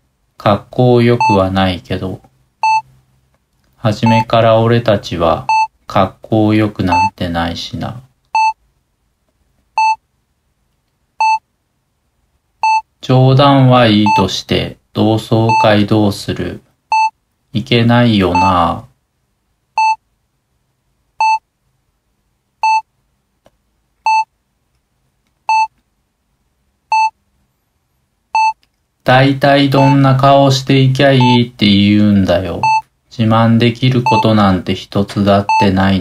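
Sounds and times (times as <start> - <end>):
short electronic beeps: 2.6 - 2.9, 4.0 - 4.3, 29.8 - 30.0, 31.2 - 31.4, 32.6 - 32.8.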